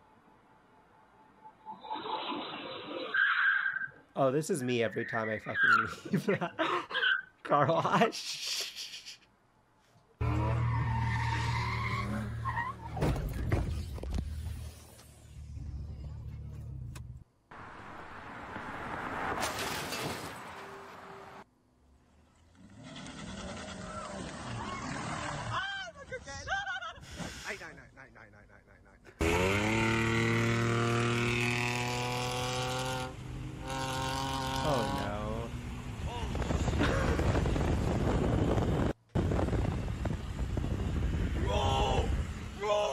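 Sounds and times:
engine revving: 10.2 - 13.0, 29.2 - 36.6
car engine: 10.2 - 20.6, 29.2 - 36.6
road noise: 10.2 - 26.1, 29.1 - 42.9
voices: 41.4 - 42.9.

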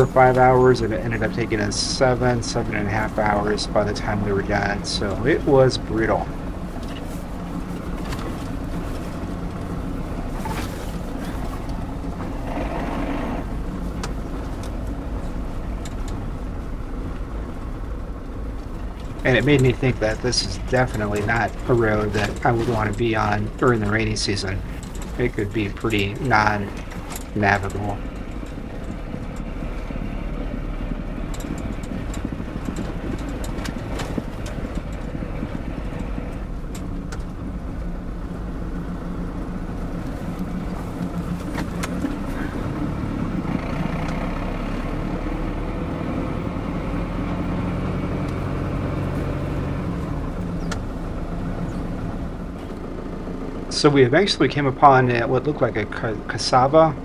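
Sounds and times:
rattles and knocks: 0.0 - 39.2
engine and tyres rumbling: 0.0 - 57.0.

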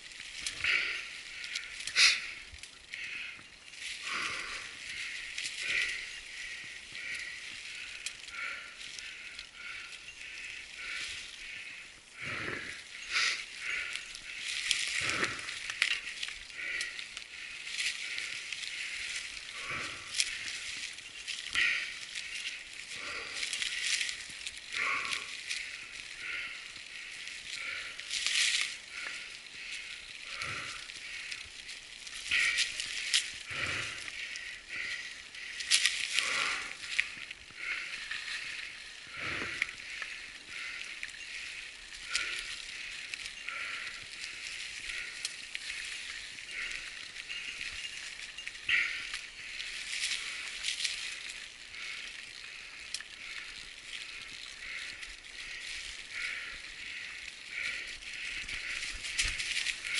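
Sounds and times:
bike tyres crunching through leaves: 0.0 - 59.9.

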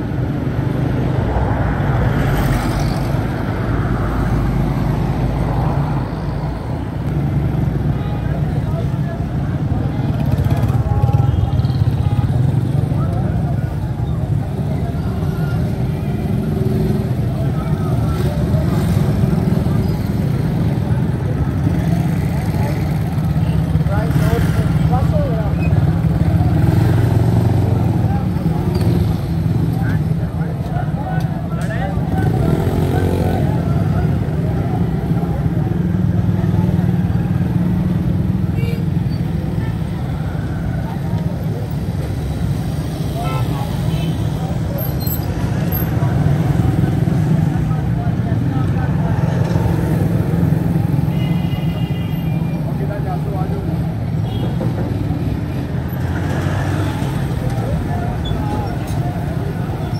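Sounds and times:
voices of people: 0.0 - 59.9
motorcycle engines running: 6.7 - 59.9.

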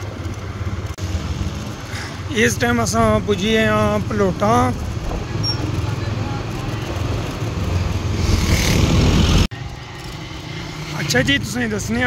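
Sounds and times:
motorcycle engine and road rumble: 0.0 - 12.0
street ambience: 0.0 - 12.0
wind buffeting microphone: 7.0 - 9.5.

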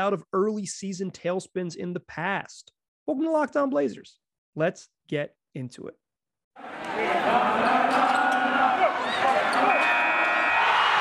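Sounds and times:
game crowd noise: 6.6 - 11.0.

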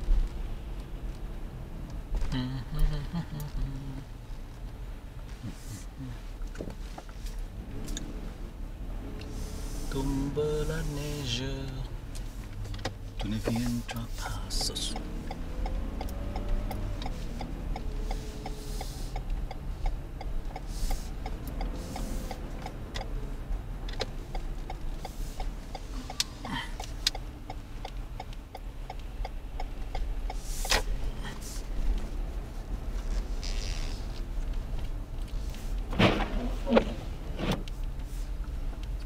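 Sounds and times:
engine and road rumble: 0.0 - 39.0
turn signal ticking: 0.0 - 39.0
song on car stereo: 9.9 - 12.0.

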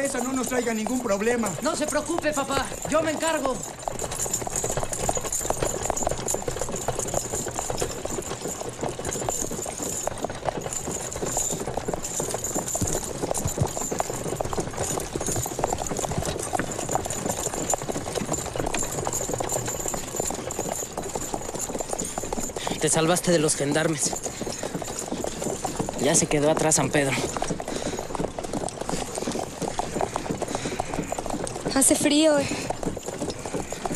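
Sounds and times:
horse hooves clopping: 0.0 - 33.9
wagon rattling: 0.0 - 33.9.

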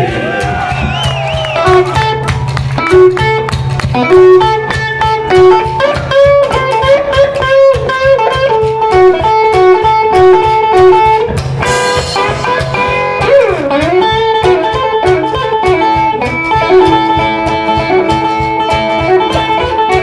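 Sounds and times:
electric guitar lead line: 0.0 - 20.0.

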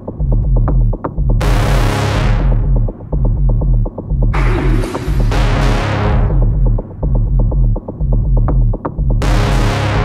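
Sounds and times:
steady dance beat: 0.0 - 1.7, 2.3 - 9.5
pulsing bassline: 0.0 - 10.0.

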